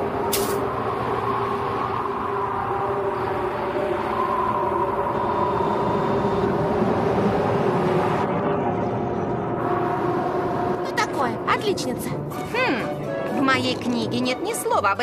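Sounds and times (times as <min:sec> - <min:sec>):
rumbling drone with held tones: 0:00.0 - 0:14.1.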